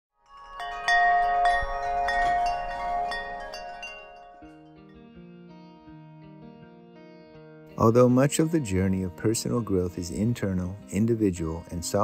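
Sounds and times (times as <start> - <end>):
chimes ringing: 0.2 - 4.9.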